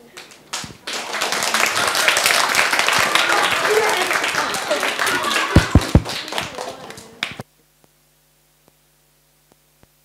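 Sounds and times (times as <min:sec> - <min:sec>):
children applauding: 0:00.0 - 0:07.4
voices: 0:01.0 - 0:07.4.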